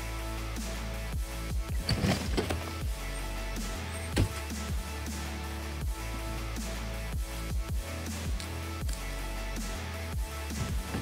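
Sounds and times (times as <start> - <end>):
electronic music with kick drum: 0.0 - 11.0.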